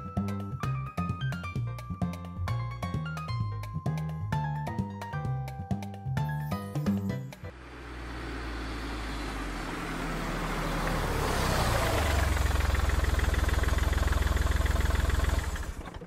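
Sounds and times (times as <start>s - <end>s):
car engine rumble: 7.3s - 16.0s.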